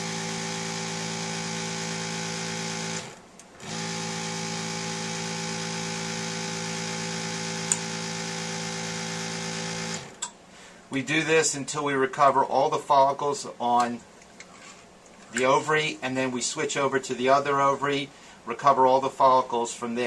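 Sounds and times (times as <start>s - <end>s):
suction pump motor hum: 0.0s - 10.4s.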